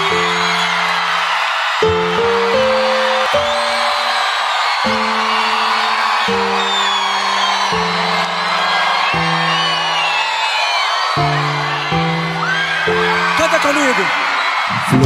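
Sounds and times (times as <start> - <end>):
audience cheering and whooping: 0.0 - 15.0.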